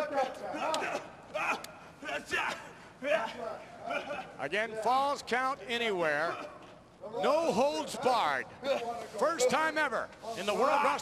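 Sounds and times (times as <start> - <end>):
men shouting and yelling: 0.0 - 11.0.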